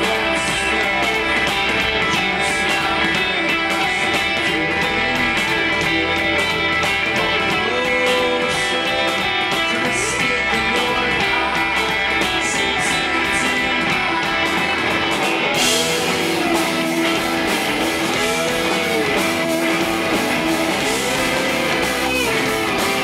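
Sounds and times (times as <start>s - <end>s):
rock band playing live: 0.0s - 23.0s.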